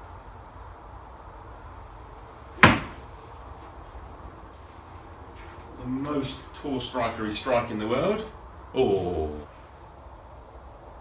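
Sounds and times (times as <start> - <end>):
low steady hum: 0.0 - 11.0
golf club striking ball: 2.6 - 3.1.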